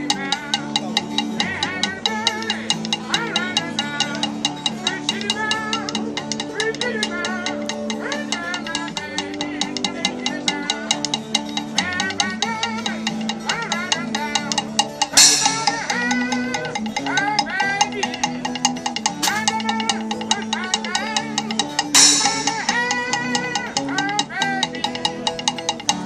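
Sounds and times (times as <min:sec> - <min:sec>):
acoustic guitar: 0:00.0 - 0:26.0
wavering melody line: 0:15.1 - 0:17.0
cymbal crash: 0:15.2 - 0:16.3, 0:22.0 - 0:23.4.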